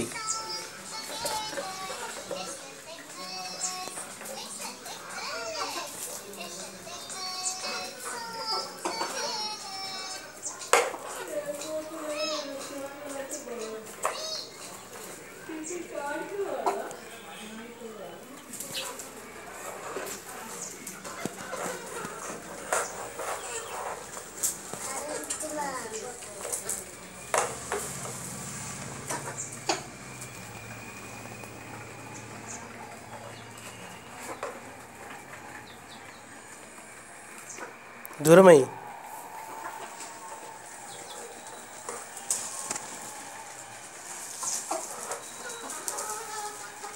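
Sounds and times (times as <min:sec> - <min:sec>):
chicks peeping: 0:00.0 - 0:46.9
hens clucking: 0:00.0 - 0:46.9.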